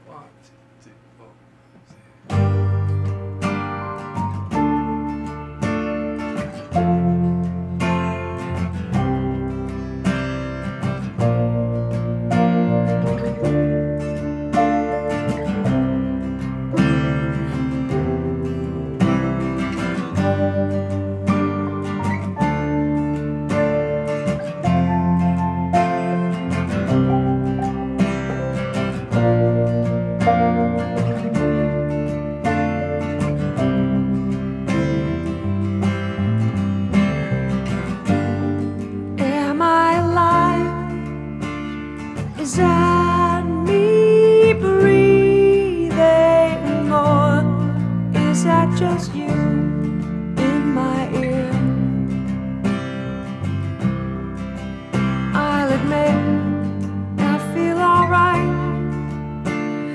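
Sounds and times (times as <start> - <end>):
sustained bass notes: 0.8 - 59.9
plucked and strummed guitar: 1.0 - 59.9.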